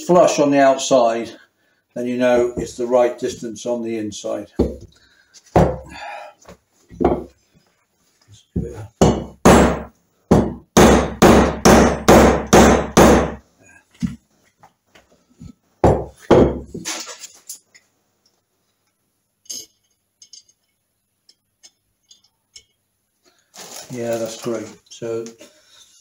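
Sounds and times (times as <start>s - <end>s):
light metal clinks: 19.4s - 20.8s.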